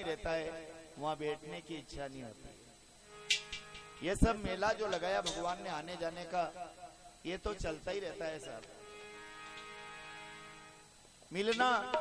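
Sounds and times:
keyboard holding a chord: 0:08.6 - 0:10.9.

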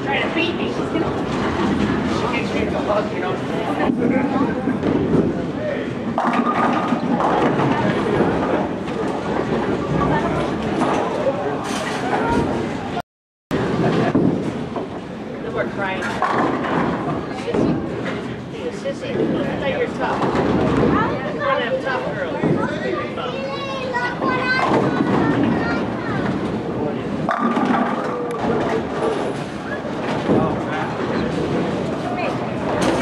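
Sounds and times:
crowd chatter: 0:00.0 - 0:13.0, 0:13.6 - 0:33.0
bowling ball striking pins: 0:27.2 - 0:29.2
knocks of balls and pins: 0:27.2 - 0:29.2.

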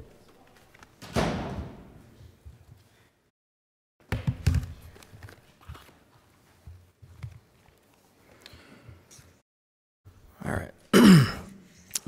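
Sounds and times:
person clearing throat: 0:10.9 - 0:11.6.

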